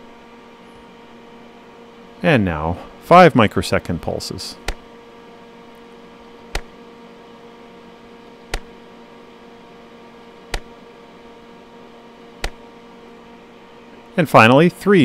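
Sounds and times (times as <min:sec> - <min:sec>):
steady hum: 0:00.0 - 0:15.0
rf meter clicking: 0:06.5 - 0:06.7, 0:08.5 - 0:08.7, 0:12.4 - 0:12.6.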